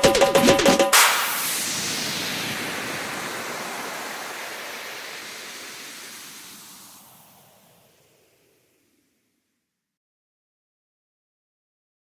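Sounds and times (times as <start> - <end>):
hissing noise wash: 0.9 - 9.3.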